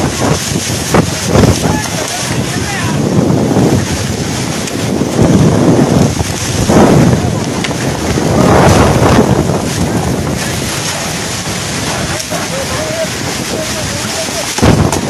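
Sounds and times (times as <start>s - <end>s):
driven rain: 0.0s - 15.0s
strong wind buffeting microphone: 0.0s - 15.0s.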